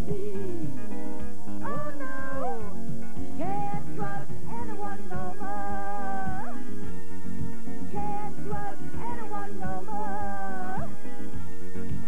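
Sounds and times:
man singing: 0.0 - 0.9
keyboard: 0.0 - 12.0.

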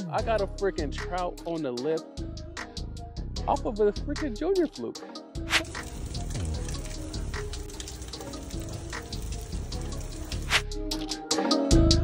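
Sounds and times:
background music: 0.0 - 12.0
fish sizzling on a grill: 5.5 - 10.6.

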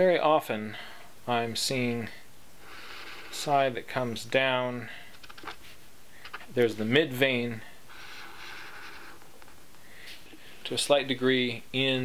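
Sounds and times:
felt-tip marker scratching paper: 2.7 - 3.4, 7.9 - 9.3.

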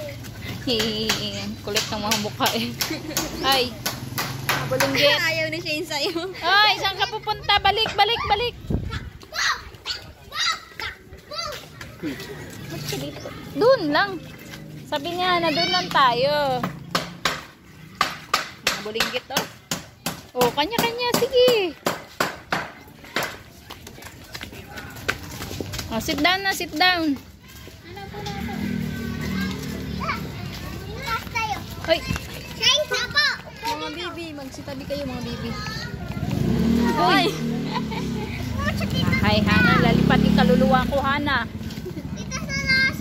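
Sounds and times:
small children calling and babbling: 0.0 - 1.6, 6.4 - 16.6, 27.0 - 40.3, 41.7 - 43.0
young children calling out: 6.9 - 12.5.

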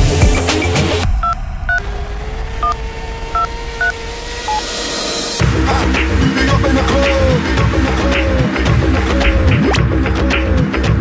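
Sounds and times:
steady dial tone: 3.4 - 4.6.

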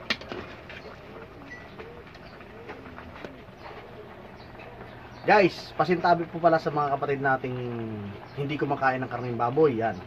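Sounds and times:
bird calling in low notes: 0.9 - 5.5.

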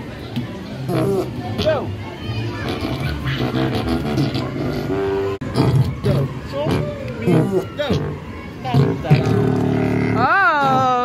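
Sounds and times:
musical pads sounding low notes: 2.6 - 11.0.

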